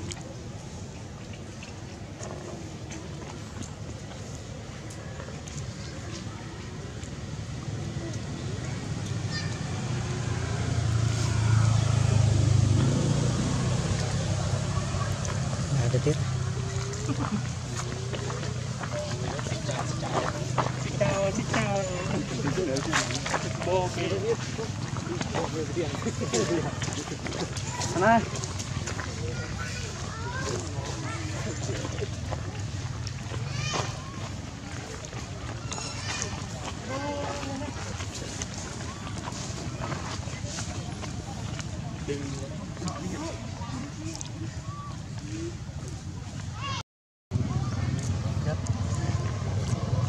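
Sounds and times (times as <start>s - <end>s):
faint voices: 0.0s - 50.0s
vehicle engine rumbling: 0.0s - 50.0s.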